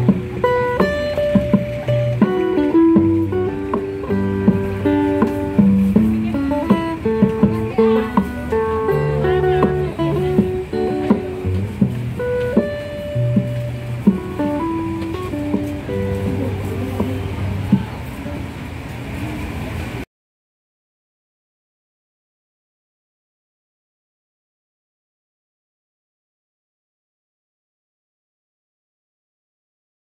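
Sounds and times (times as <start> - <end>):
acoustic guitar strummed and plucked: 0.0 - 18.0.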